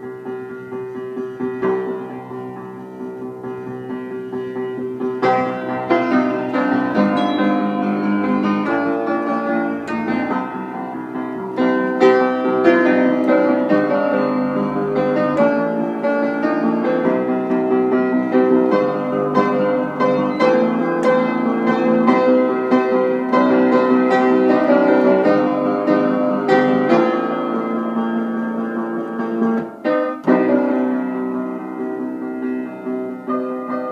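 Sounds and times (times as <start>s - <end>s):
acoustic piano chords and melody: 0.0s - 33.9s.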